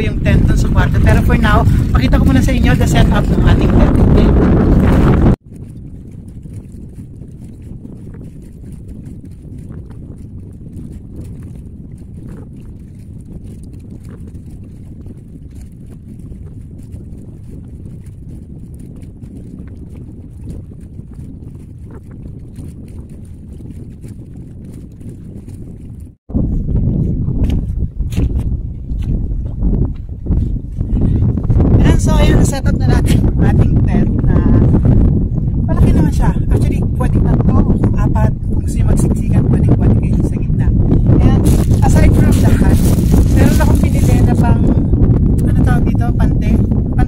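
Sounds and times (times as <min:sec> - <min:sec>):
wind rumbling on microphone: 0:00.0 - 0:47.0.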